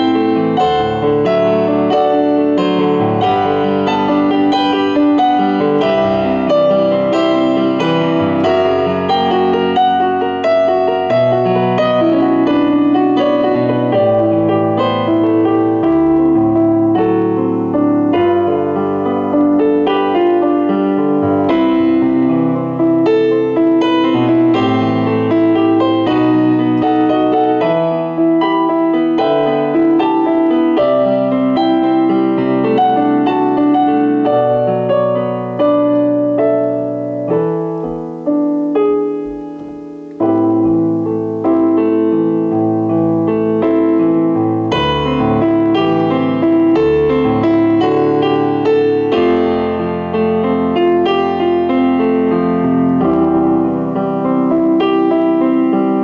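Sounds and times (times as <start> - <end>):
digital piano piece: 0.0 - 56.0.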